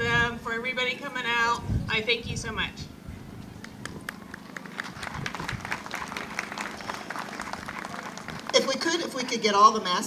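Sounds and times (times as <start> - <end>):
crowd applauding: 3.6 - 8.9.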